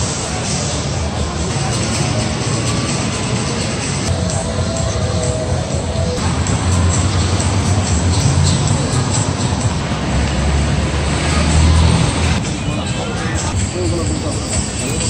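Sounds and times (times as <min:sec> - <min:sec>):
low engine rumble: 0:00.0 - 0:15.0
music: 0:00.0 - 0:15.0
traffic roar: 0:00.0 - 0:15.0
voices: 0:00.0 - 0:15.0.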